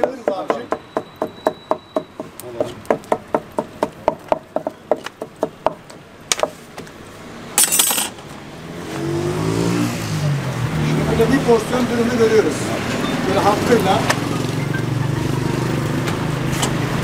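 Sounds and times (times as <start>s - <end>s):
passing vehicle engine: 8.2s - 17.0s.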